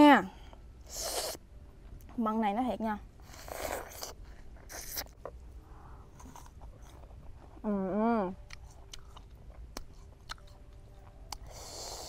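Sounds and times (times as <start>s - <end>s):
crunchy apple chewing: 3.2s - 5.4s, 6.1s - 7.7s, 8.3s - 12.0s.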